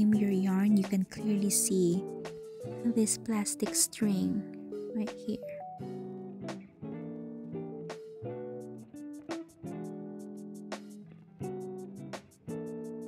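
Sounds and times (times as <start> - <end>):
strummed acoustic guitar: 0.0 - 13.0.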